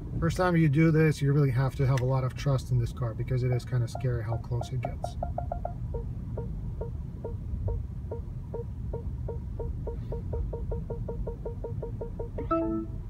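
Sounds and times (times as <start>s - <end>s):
low steady rumble: 0.0s - 13.0s
parking sensor warning beeps: 3.8s - 13.0s.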